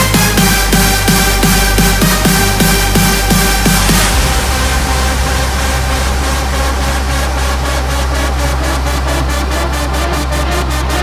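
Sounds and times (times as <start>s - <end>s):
deep bass note: 0.0s - 11.0s
high rhythmic pulses: 0.0s - 11.0s
house music build-up: 0.0s - 11.0s
rising white-noise wash: 1.2s - 11.0s.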